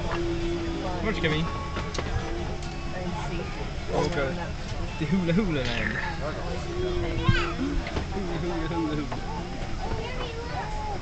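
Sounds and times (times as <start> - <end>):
airliner cabin rumble: 0.0 - 11.0
toddler voice: 6.5 - 7.8, 9.8 - 11.0.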